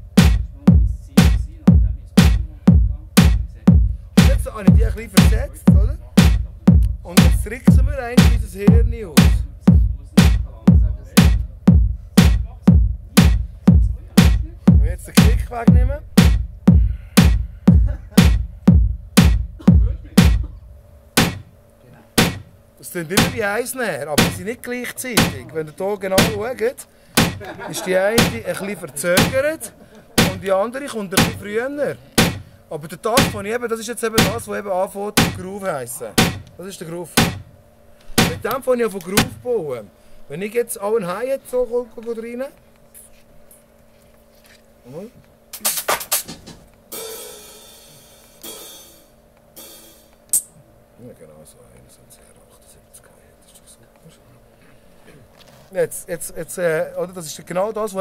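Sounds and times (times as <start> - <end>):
electronic drum hits: 0.0 - 21.6, 22.2 - 22.6, 23.2 - 23.5, 24.2 - 24.5, 25.2 - 25.5, 26.2 - 26.4, 27.2 - 27.5, 28.2 - 28.5, 29.2 - 29.5, 30.2 - 30.5, 31.2 - 31.5, 32.2 - 32.5, 33.2 - 33.4, 34.2 - 34.5, 35.2 - 35.5, 36.2 - 36.5, 37.2 - 37.5, 38.2 - 38.5, 39.2 - 39.4, 46.9 - 47.7, 48.4 - 50.1
ringing cymbal hits: 46.9 - 50.1.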